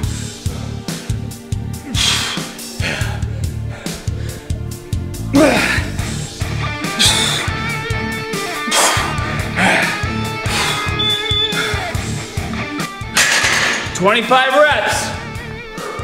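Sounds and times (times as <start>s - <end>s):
music with guitar-like lead: 3.7s - 14.0s, 14.8s - 16.0s.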